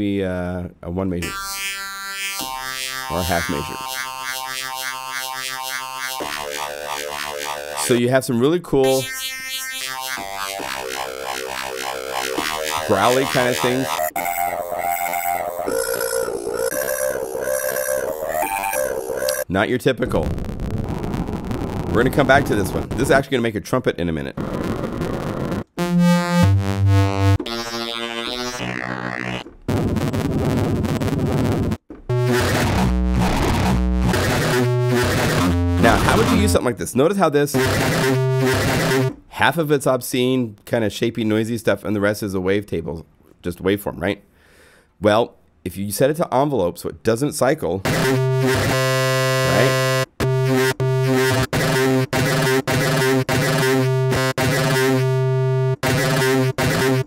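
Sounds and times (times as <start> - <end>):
growly synthesizer tone pulsing: 1.2 - 8.0, 8.9 - 19.4, 24.6 - 31.0, 32.1 - 36.6, 37.6 - 39.1, 47.9 - 57.0.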